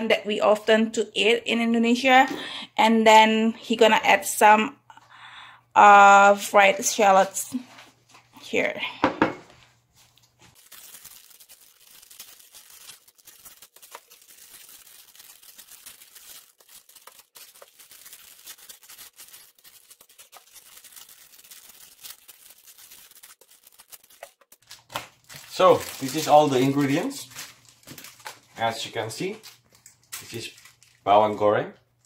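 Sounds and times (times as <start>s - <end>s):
plastic packets crinkling: 10.0s - 31.5s.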